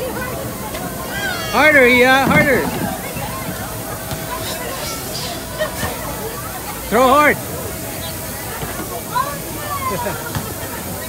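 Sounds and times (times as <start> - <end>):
hubbub of voices: 0.0 - 11.0
outdoor noise: 0.0 - 11.0.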